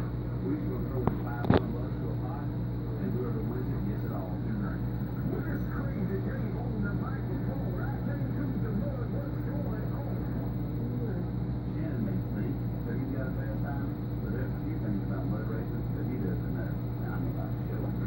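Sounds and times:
air pump humming: 0.0 - 18.0
indistinct voices talking: 0.0 - 18.0.

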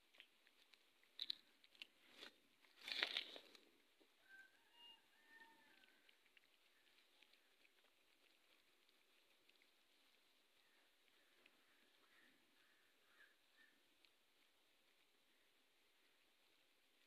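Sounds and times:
plastic packet crinkling: 0.7 - 3.7.

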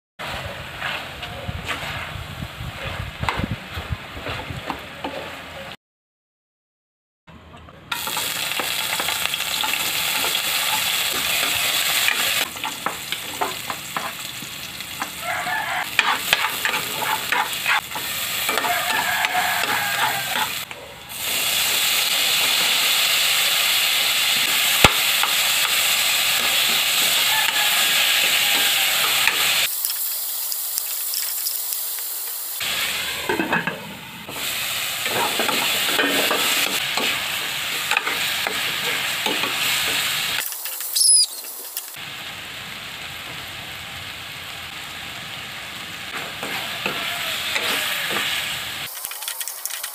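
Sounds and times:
vegetables sizzling in hot oil: 7.9 - 49.9
metal ladle scraping a pan: 15.5 - 21.3.

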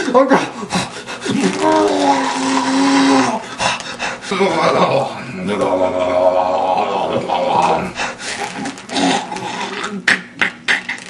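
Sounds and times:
person wailing: 0.7 - 3.5, 4.3 - 8.0.

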